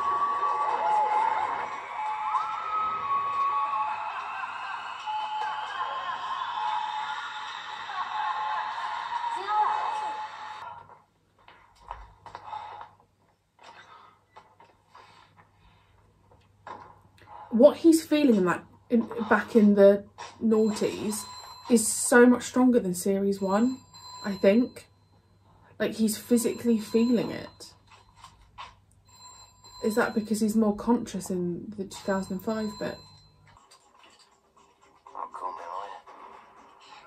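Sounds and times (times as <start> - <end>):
loud steady tone: 20.4 - 28.0, 31.9 - 33.2.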